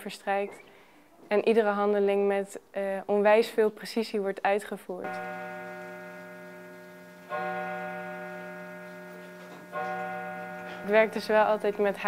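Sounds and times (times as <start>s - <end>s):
low chime ringing: 5.1s - 12.0s.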